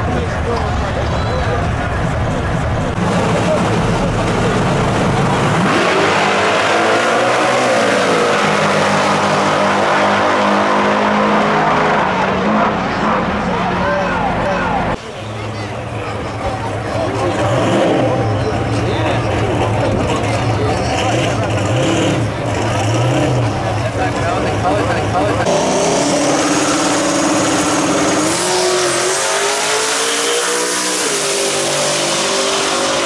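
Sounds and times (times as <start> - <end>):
crowd voices: 0.0 - 33.0
race car engine rumbling low: 0.0 - 33.0
race car engines accelerating: 0.0 - 33.0.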